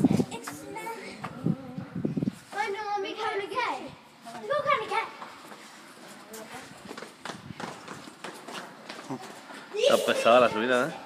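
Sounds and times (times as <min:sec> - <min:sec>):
footsteps: 0:04.3 - 0:11.0.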